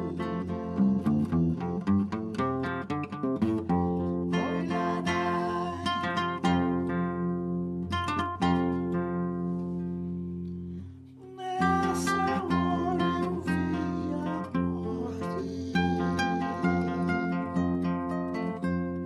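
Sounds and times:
acoustic guitar plucked and strummed: 0.0s - 19.0s.

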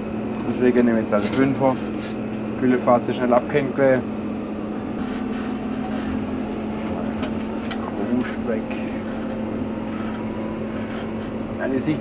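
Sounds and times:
tractor engine drone: 0.0s - 12.0s.

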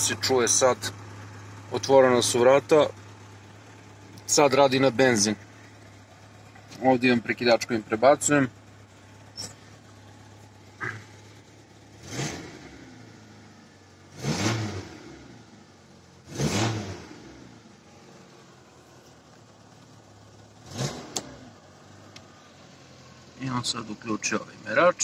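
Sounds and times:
car engine idling and revving: 0.0s - 25.0s.

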